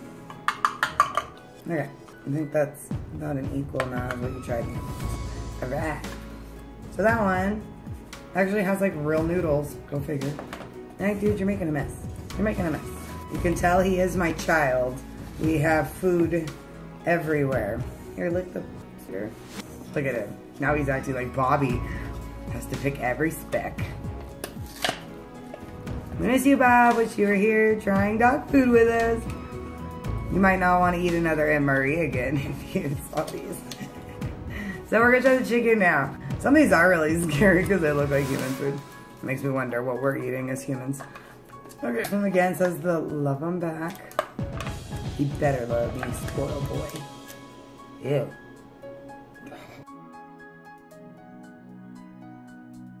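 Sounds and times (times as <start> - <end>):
soft background music: 0.0 - 53.0.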